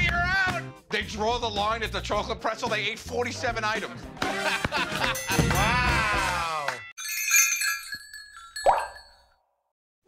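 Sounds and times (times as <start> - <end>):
bright glassy chime tones: 6.9 - 9.4.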